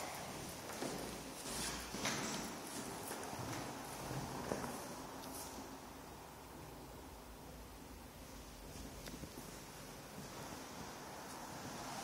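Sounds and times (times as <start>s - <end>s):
footsteps on hardwood floor: 0.2s - 5.4s.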